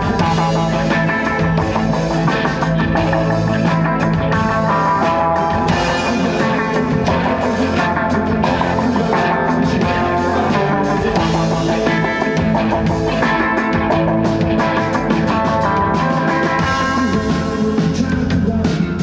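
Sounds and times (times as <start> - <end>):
drum kit: 0.0 - 19.0
electric guitars: 0.0 - 19.0.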